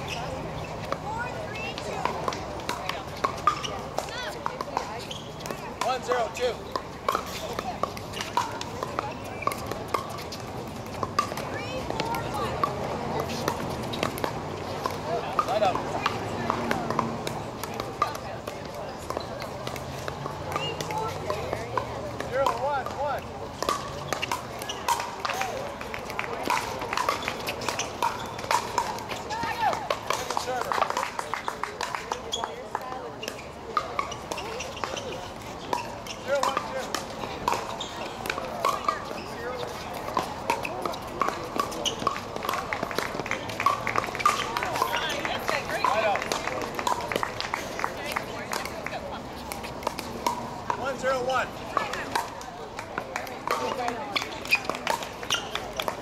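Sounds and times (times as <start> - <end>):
people talking: 0.0 - 56.0
paddles hitting plastic ball: 1.8 - 56.0.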